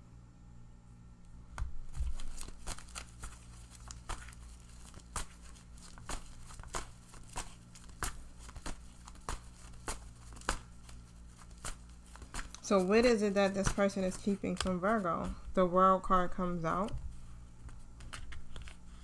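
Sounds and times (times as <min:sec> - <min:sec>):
cards being shuffled: 0:01.5 - 0:15.5, 0:16.2 - 0:19.0.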